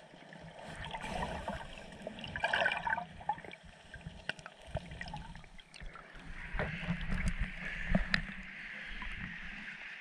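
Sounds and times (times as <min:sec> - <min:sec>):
water sloshing and gurgling: 0:00.0 - 0:10.0.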